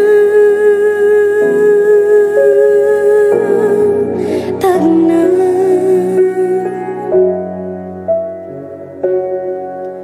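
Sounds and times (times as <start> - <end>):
soft musical accompaniment: 0.0 - 10.0.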